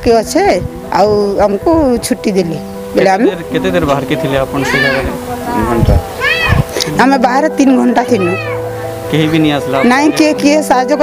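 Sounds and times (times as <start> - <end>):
other voices: 3.0 - 10.7.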